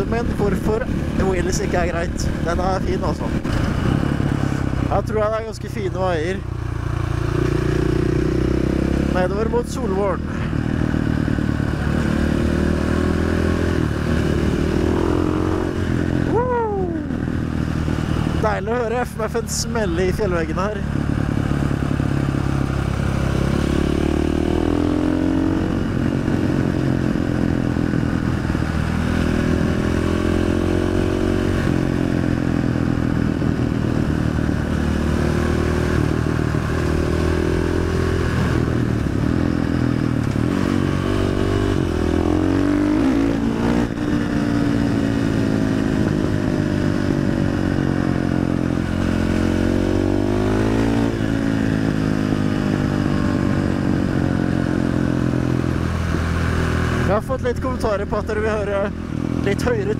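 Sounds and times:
dirt bike engine revving: 6.7 - 16.4, 20.5 - 27.8, 28.4 - 59.9.

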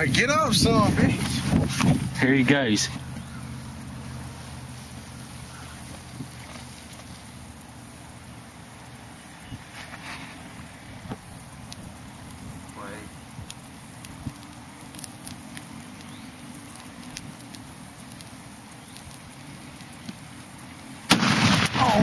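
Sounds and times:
fire crackling and popping: 0.0 - 22.0
steady background hiss: 0.0 - 22.0.

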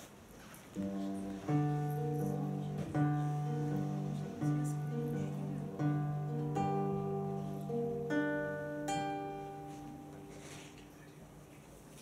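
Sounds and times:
acoustic guitar chords: 0.8 - 11.6.

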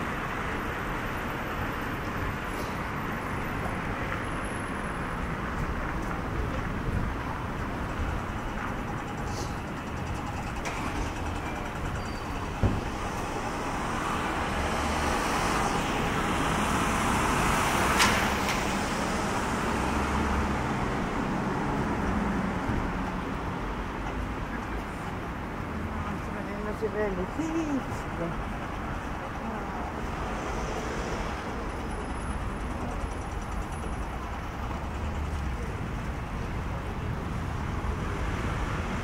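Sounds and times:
cars passing: 0.0 - 39.0.

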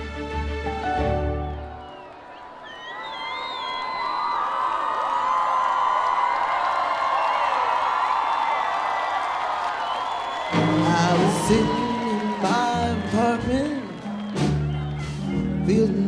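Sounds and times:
audience cheering and whooping: 1.0 - 16.0.

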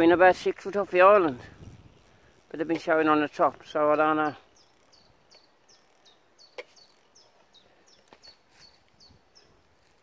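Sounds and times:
small bird chirping: 1.0 - 10.0.

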